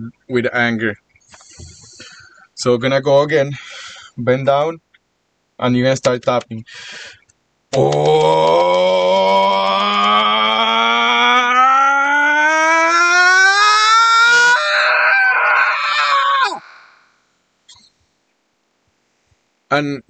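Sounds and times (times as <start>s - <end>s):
man screaming: 7.8s - 17.0s.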